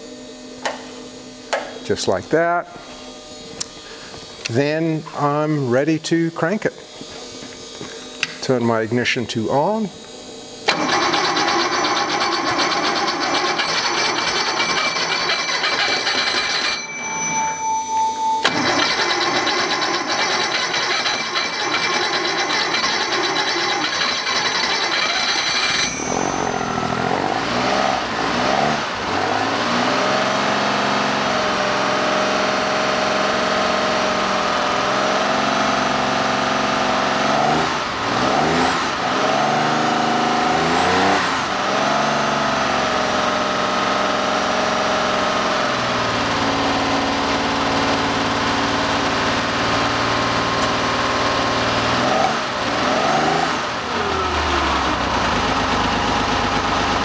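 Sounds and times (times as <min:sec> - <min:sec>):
high engine whines: 0:00.0 - 0:57.0
car engine running: 0:18.4 - 0:57.0.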